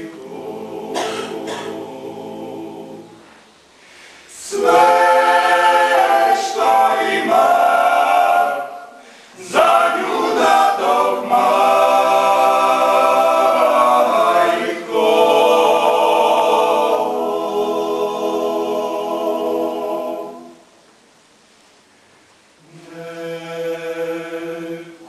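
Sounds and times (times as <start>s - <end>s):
men singing a cappella harmony: 0.0s - 3.2s, 4.3s - 20.6s, 22.7s - 25.0s.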